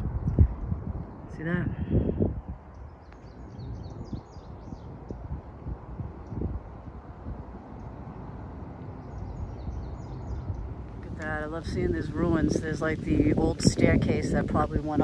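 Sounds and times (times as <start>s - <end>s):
wind rumble on microphone: 0.0s - 15.0s
songbird chirping: 2.2s - 15.0s.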